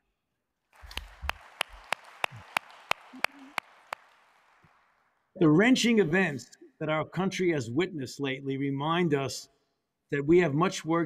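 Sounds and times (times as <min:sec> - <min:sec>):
audience applauding: 0:00.7 - 0:05.2
sharp hand claps: 0:00.8 - 0:05.2.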